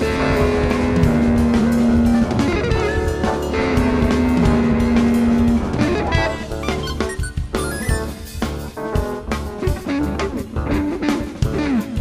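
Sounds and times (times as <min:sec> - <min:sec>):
busy drumming: 0:00.0 - 0:12.0
jazz fusion band playing: 0:00.0 - 0:12.0.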